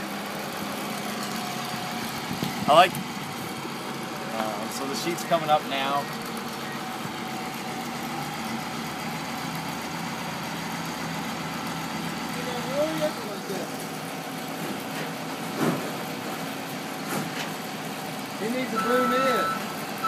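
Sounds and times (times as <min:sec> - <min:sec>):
diesel engine droning: 0:00.0 - 0:20.0.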